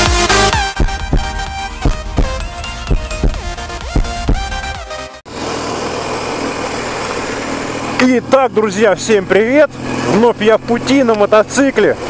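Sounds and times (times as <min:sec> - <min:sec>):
electronic dance music: 0:00.0 - 0:05.2
motorcycle engine riding: 0:00.0 - 0:12.0.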